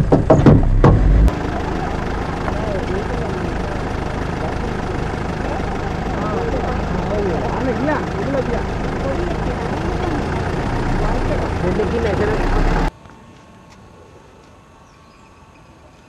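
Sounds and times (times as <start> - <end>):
vehicle engine idling: 0.0 - 12.9
faint voices talking: 1.3 - 12.9.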